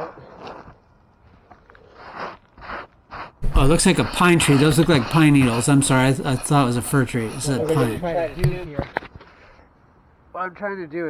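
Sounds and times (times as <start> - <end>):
gloved hand brushing sawdust: 2.6 - 8.7.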